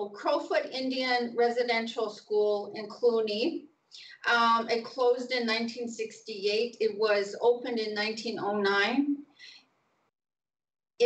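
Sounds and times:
woman speaking: 0:00.0 - 0:09.2.

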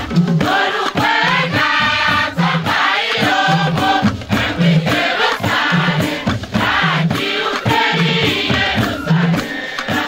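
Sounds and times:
hand drums beating: 0:00.0 - 0:10.0
youth choir singing: 0:00.0 - 0:10.0.

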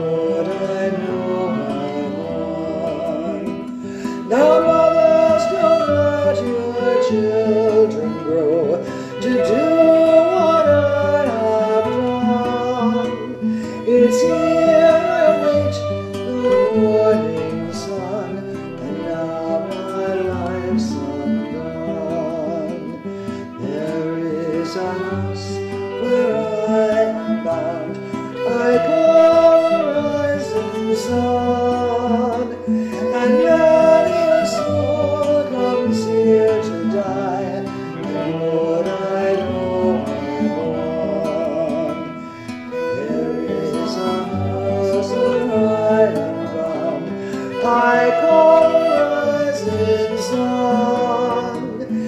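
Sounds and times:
fiddle melody: 0:00.0 - 0:52.0
guitar accompaniment: 0:00.0 - 0:52.0.

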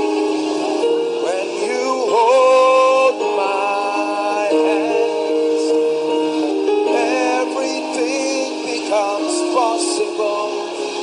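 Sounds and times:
keyboard chords: 0:00.0 - 0:11.0
person singing: 0:00.0 - 0:11.0.

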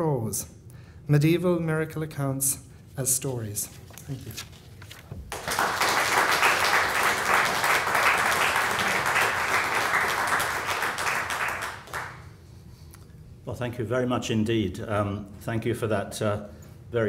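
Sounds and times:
audience clapping: 0:05.3 - 0:12.4.

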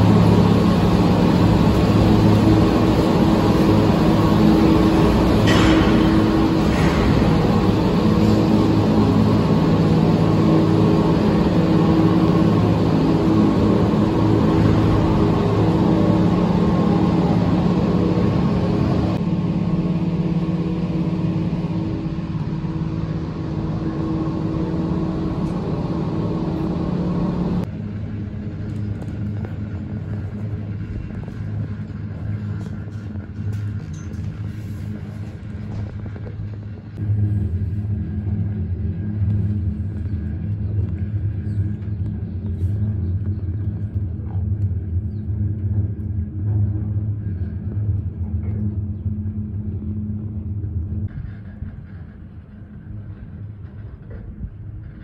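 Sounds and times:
cabin rumble: 0:00.0 - 0:55.0
gondola machinery hum: 0:00.0 - 0:55.0.

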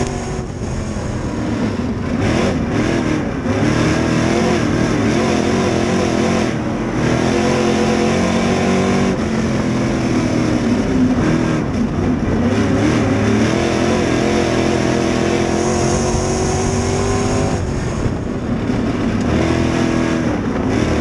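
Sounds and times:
race car engine revving: 0:00.0 - 0:21.0.

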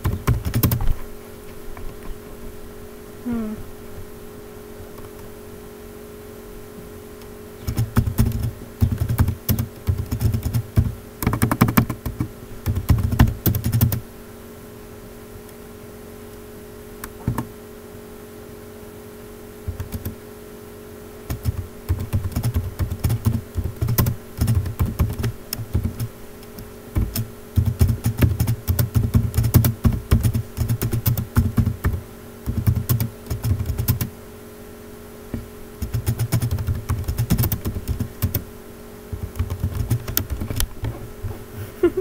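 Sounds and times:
faint steady hum: 0:00.0 - 0:42.0.

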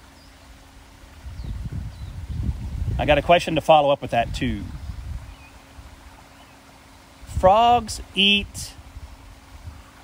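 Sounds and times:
low rumble on microphone: 0:01.1 - 0:03.5, 0:04.1 - 0:06.2, 0:07.2 - 0:10.0.

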